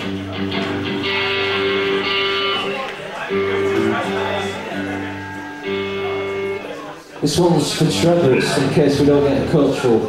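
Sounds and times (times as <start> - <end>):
electric guitar strumming chords: 0.0 - 9.5.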